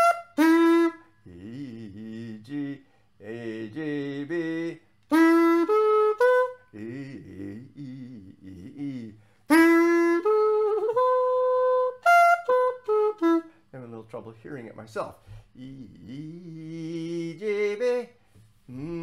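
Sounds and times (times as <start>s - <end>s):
person humming notes: 0.0s - 13.6s, 15.5s - 19.0s.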